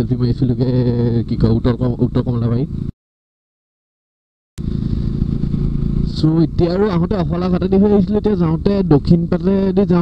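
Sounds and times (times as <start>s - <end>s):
man talking: 0.0s - 2.7s, 6.1s - 10.0s
motorcycle engine running: 4.6s - 10.0s.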